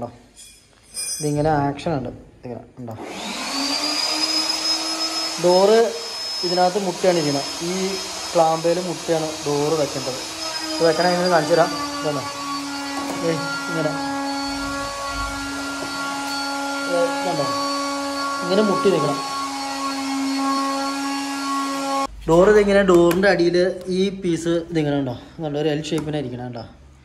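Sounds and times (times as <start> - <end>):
electric motor whining: 3.0 - 22.1.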